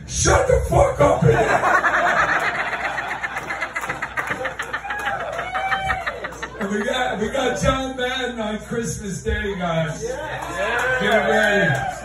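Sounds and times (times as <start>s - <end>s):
men laughing hard: 1.2s - 7.2s.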